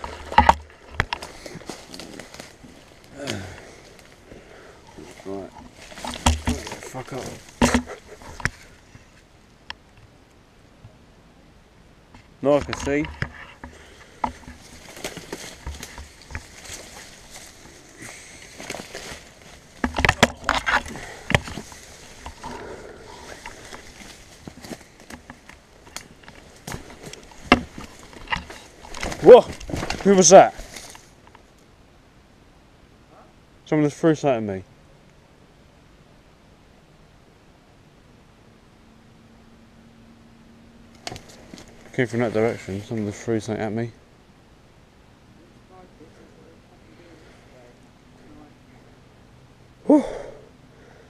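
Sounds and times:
footsteps: 0.0 - 9.3, 12.1 - 31.3
leaves and twigs crackling: 0.0 - 10.0, 12.1 - 31.8, 40.8 - 44.3.

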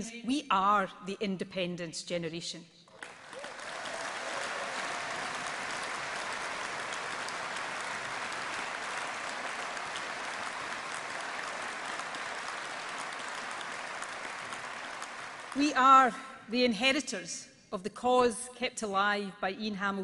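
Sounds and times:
audience applauding: 2.9 - 15.7.

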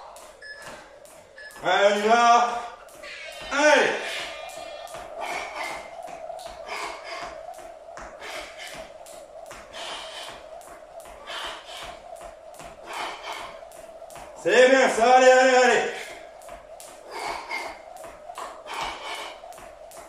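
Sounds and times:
skipping rope slapping tiled floor: 0.0 - 20.0.

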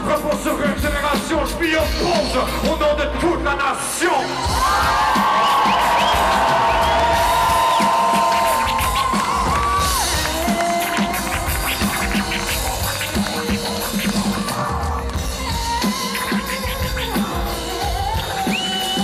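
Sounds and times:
drums: 0.0 - 19.0
crowd cheering: 4.1 - 16.3.

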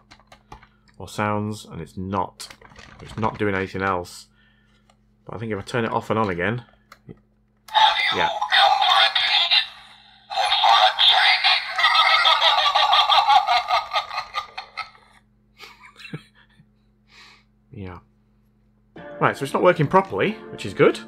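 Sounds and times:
tinny recorded voice from speaker: 7.7 - 13.4.

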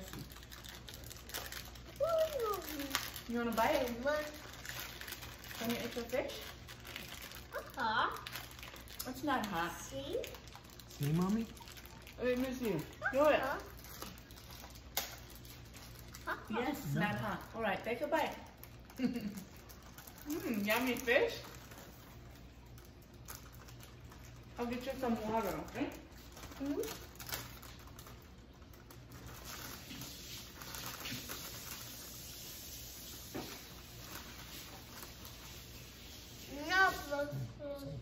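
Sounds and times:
eating clicks and rustles: 0.0 - 36.2.

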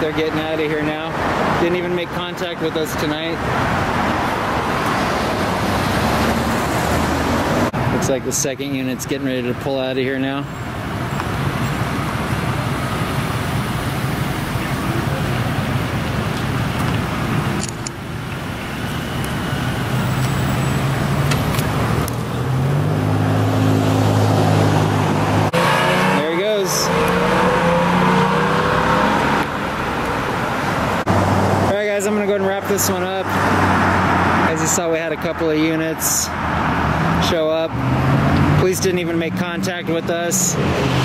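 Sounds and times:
street traffic noise: 0.0 - 41.0.

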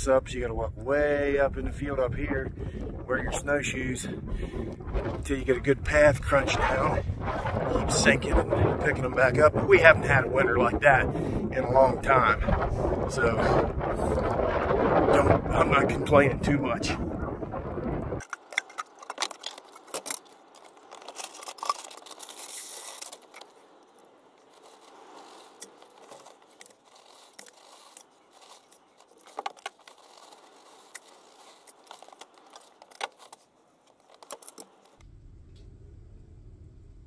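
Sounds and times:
plastic buckets clicking and rattling: 12.0 - 23.5, 24.5 - 35.0.

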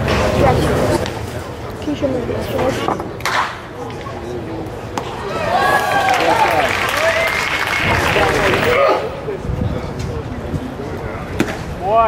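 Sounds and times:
crowd shouting and calling: 5.0 - 9.3
crowd clapping: 5.6 - 8.8.

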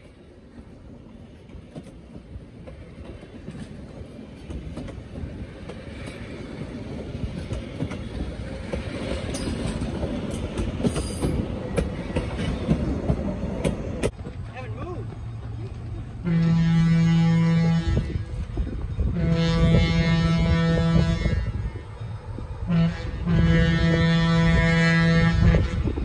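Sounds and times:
wheels clicking over rail joints: 0.0 - 16.6
train cars rumbling on rails: 0.0 - 26.0.

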